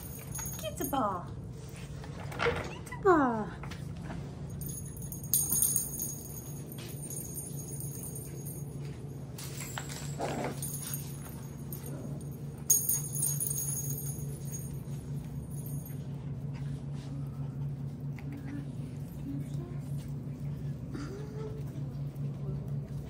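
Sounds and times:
toy bell jingling: 0.0s - 1.2s, 4.6s - 16.0s
low room hum: 0.0s - 23.0s.

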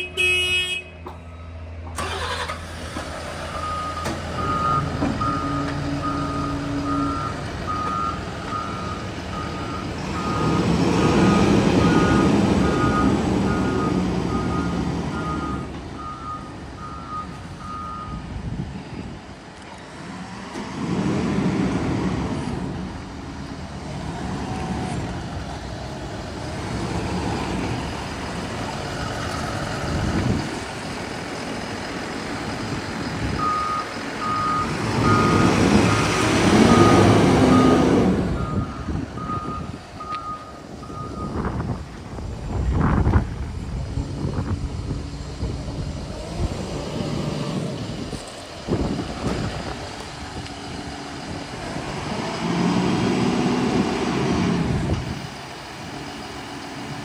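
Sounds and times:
forklift diesel engine running: 0.0s - 57.0s
reverse alarm beeping: 3.5s - 10.6s, 11.2s - 18.2s, 33.4s - 36.0s, 36.7s - 41.4s.

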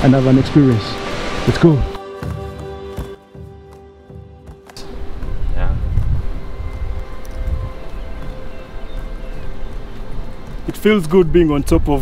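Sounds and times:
soft background music: 0.0s - 12.0s
wind buffeting microphone: 4.9s - 12.0s.

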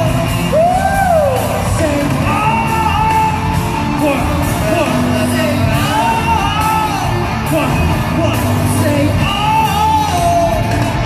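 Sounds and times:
pop concert music with singing: 0.0s - 11.0s.

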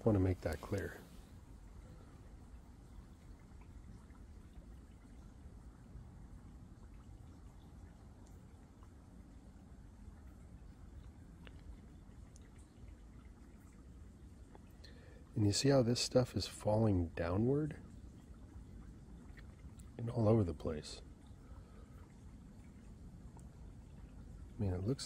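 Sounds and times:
faint clicks: 11.4s - 11.7s.

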